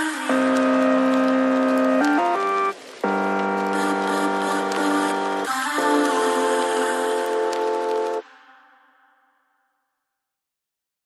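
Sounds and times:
background music chord: 0.3s - 8.4s.

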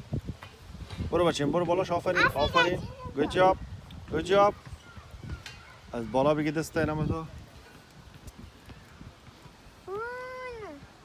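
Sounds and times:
child making long call: 9.9s - 10.9s.

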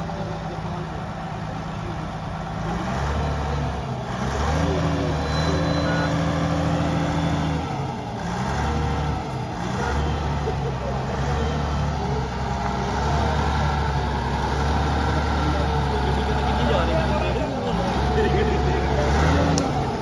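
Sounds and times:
crane diesel engine under load: 0.0s - 20.0s.

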